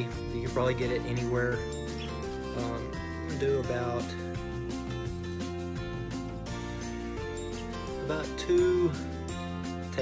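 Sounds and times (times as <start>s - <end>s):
music with steady beat: 0.0s - 10.0s.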